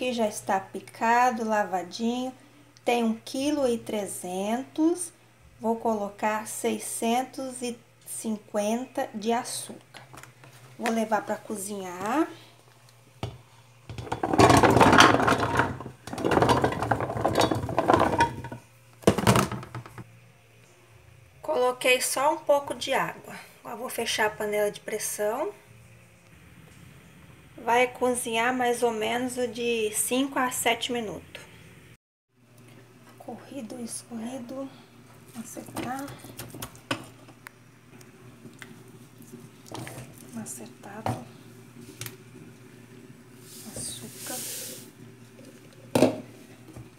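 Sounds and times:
pumpkin chunks clattering into pot: 13.9 - 20.0.

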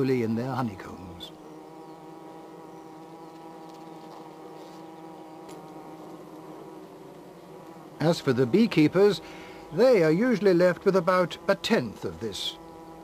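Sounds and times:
honeybees buzzing in a hive: 0.0 - 13.0.

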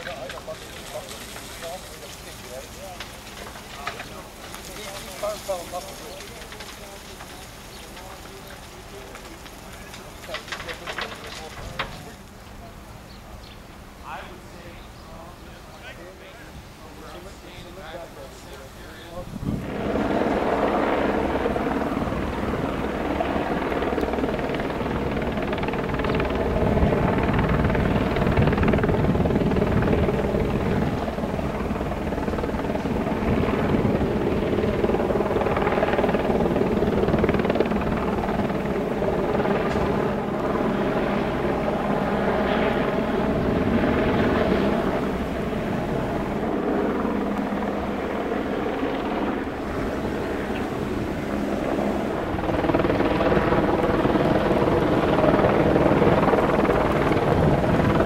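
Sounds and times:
helicopter rotor drone: 0.0 - 58.0.

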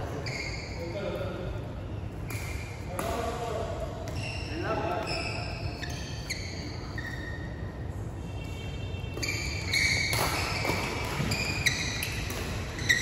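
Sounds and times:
shoes squeaking on hall floor: 0.0 - 13.0.

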